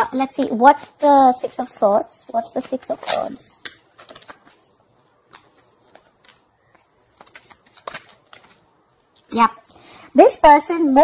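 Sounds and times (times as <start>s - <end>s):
cards clicking and rustling: 2.6s - 9.3s.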